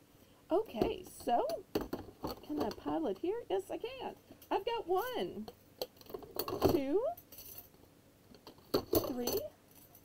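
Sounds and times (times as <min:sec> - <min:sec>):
metal spoons clinking: 0:08.7 - 0:10.0.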